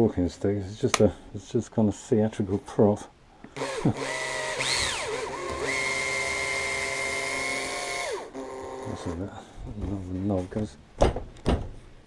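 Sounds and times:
cordless drill motor whining: 3.6s - 9.2s.

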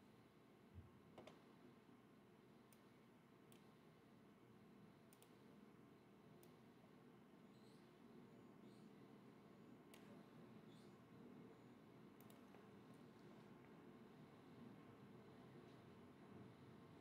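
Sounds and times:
faint computer mouse clicks: 2.7s - 2.9s, 3.5s - 3.8s, 5.1s - 5.5s, 6.4s - 6.6s, 9.9s - 10.9s, 12.2s - 13.3s.

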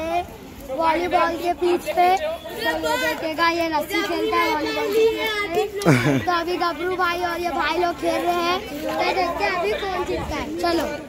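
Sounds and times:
boy talking: 0.0s - 11.0s
children's voices: 0.0s - 11.0s.

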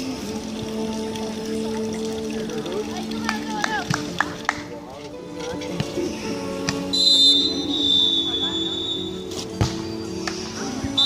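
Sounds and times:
background music over speakers: 0.0s - 11.0s
referee's whistle long note: 6.9s - 9.2s.

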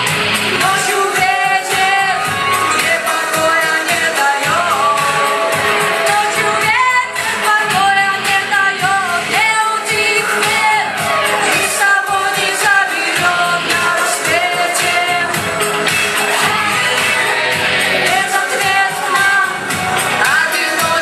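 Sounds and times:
backing track with steady beat: 0.0s - 21.0s
woman singing into microphone: 0.4s - 21.0s.

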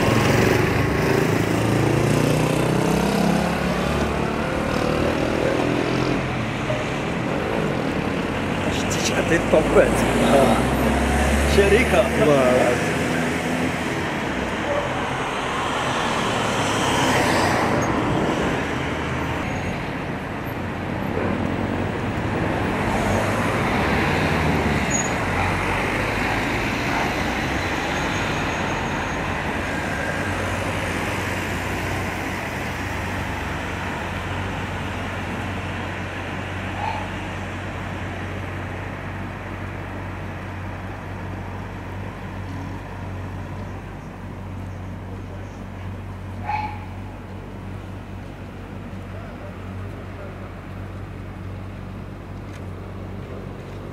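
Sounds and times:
road traffic: 0.0s - 53.9s.

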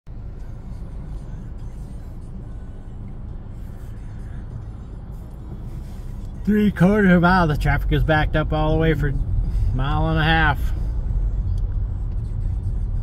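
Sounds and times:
car engine and road noise: 0.0s - 13.0s
faint music: 0.1s - 13.0s.

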